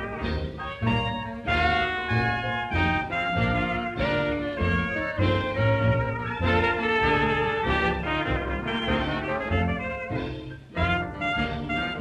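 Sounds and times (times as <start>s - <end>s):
swing dance band: 0.0s - 12.0s
trumpets and trombones: 0.0s - 12.0s.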